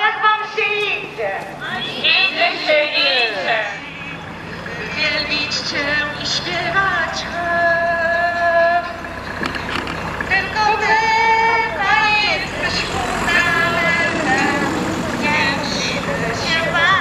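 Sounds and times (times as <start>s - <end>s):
singing over horn loudspeaker: 0.0s - 9.0s, 10.2s - 17.0s.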